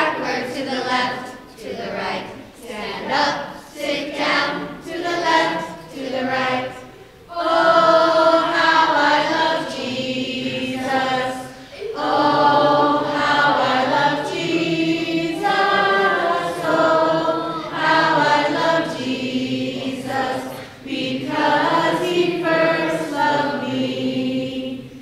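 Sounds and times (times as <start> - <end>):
children singing together: 0.0 - 25.0.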